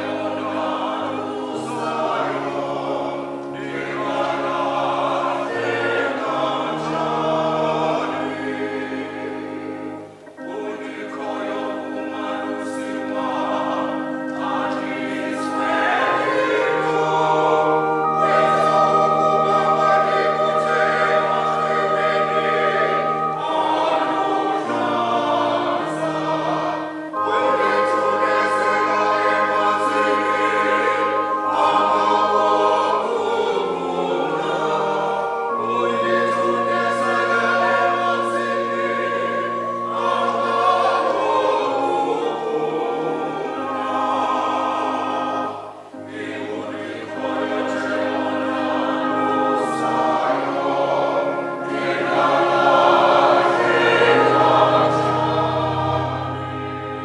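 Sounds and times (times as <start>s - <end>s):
congregation singing a hymn: 0.0s - 57.0s.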